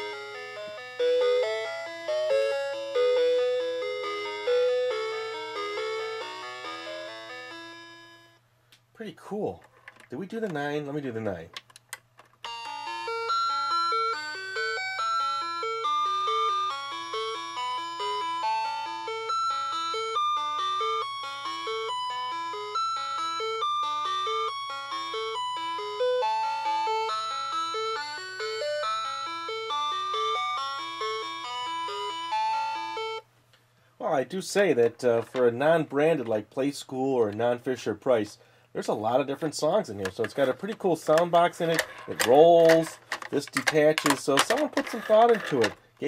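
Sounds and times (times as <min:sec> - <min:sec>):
toy telephone electronic tune: 0:00.0 - 0:08.4, 0:12.4 - 0:33.3.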